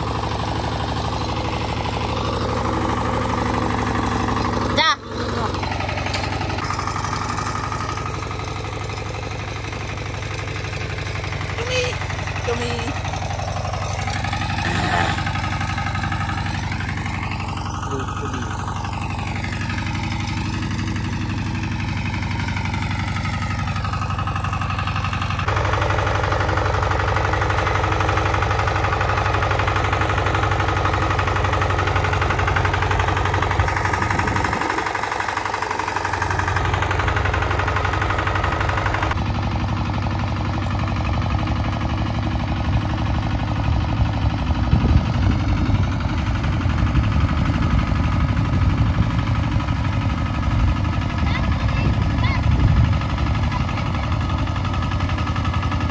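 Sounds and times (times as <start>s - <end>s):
diesel engine running: 0.0s - 55.9s.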